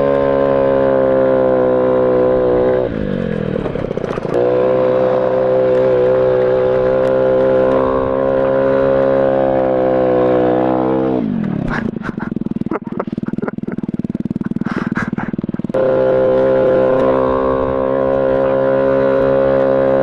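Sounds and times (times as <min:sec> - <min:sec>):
scooter engine revving: 0:00.0 - 0:20.0.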